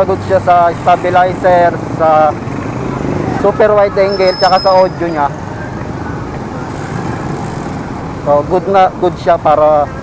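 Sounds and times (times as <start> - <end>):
road rumble: 0.0 - 10.0
traffic: 0.0 - 10.0
wind: 0.0 - 10.0.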